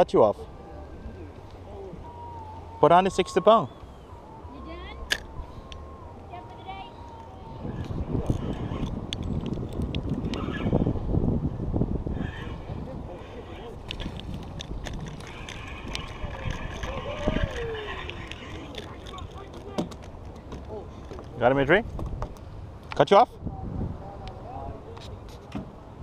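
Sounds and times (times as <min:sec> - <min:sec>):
wind buffeting microphone: 0:00.5 - 0:26.0.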